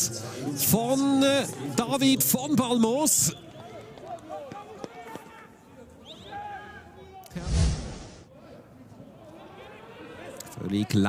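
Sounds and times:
loud noise burst: 7.4s - 8.2s.

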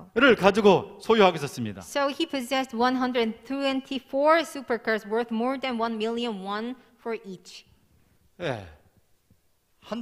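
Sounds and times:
man speaking: 0.0s - 1.9s, 8.4s - 8.9s.

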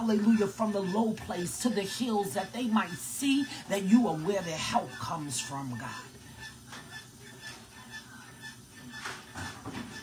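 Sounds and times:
soft breaths: 3.4s - 3.8s.

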